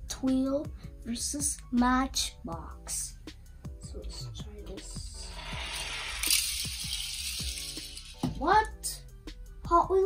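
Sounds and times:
toy cars rolling on track: 5.3s - 8.2s.

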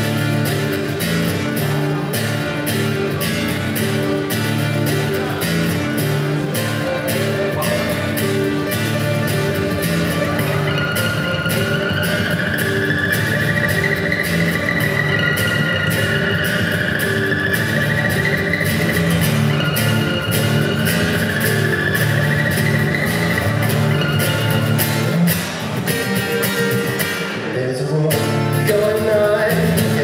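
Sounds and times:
fingerstyle acoustic guitar: 0.0s - 30.0s
high sliding tone: 2.8s - 27.1s.

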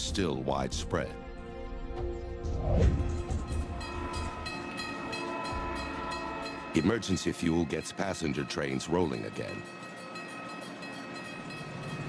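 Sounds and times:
level crossing warning bell: 3.5s - 12.0s.

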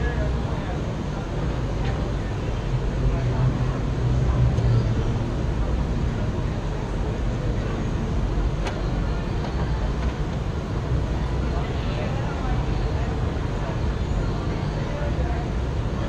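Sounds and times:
low street rumble: 0.0s - 16.0s.

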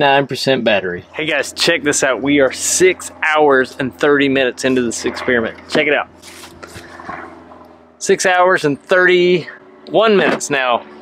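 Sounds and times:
soft rustling and handling: 6.2s - 7.3s.

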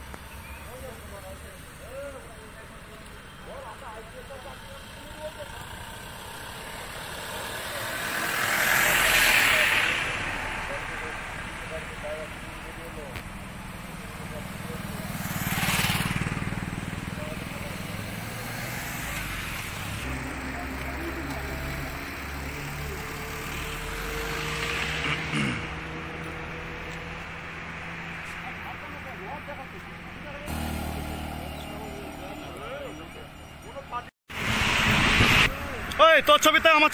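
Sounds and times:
vehicles passing by: 0.0s - 36.9s.

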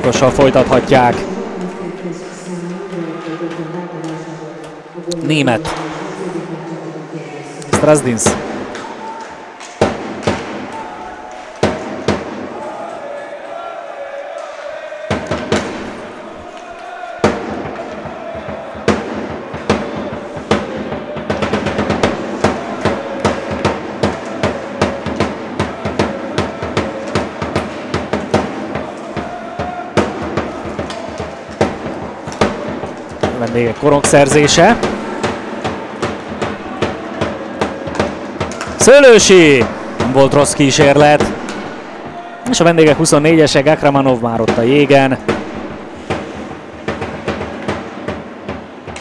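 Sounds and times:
drum beating quick rhythm: 0.0s - 2.3s, 17.2s - 49.0s
crowd murmur: 0.0s - 9.8s, 10.4s - 43.4s
scattered knocks: 17.2s - 49.0s.

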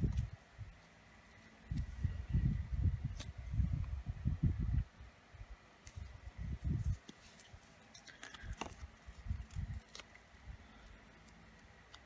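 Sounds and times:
stickers peeling with light clicks: 5.8s - 12.0s.

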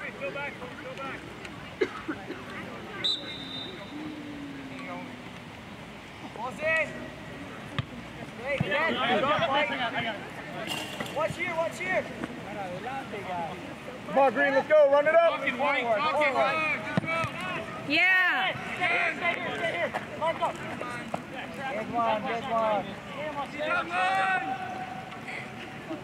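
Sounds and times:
players and spectators shouting: 14.1s - 20.3s, 21.8s - 25.9s.

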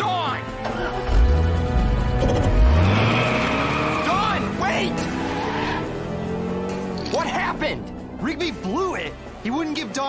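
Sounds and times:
car engine revving up: 0.9s - 8.1s
tyres squealing: 3.0s - 6.0s.

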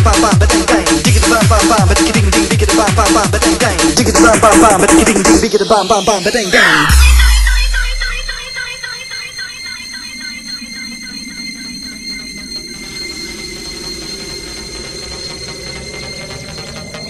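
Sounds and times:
high steady synth tones: 0.0s - 17.0s
falling synth sweep: 0.2s - 17.0s
heavy bass hit: 6.9s - 8.4s.

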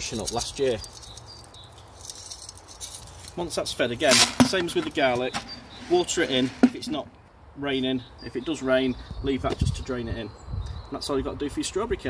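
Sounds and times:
pellets pattering onto soil and leaves: 0.0s - 6.9s.

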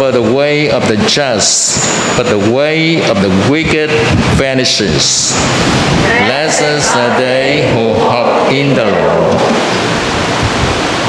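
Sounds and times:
loud steady hiss: 0.0s - 11.0s.

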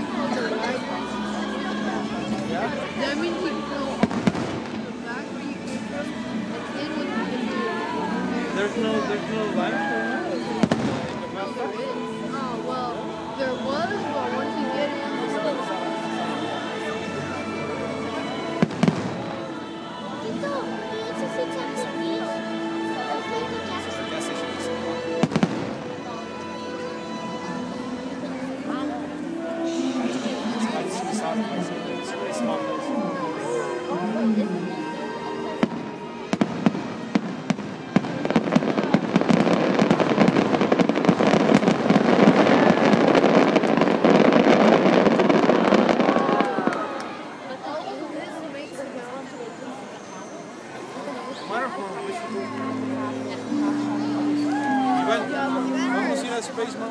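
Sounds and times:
fireworks bursting: 3.9s - 5.8s, 10.5s - 11.4s, 18.6s - 19.5s, 25.2s - 25.9s, 35.6s - 47.2s.

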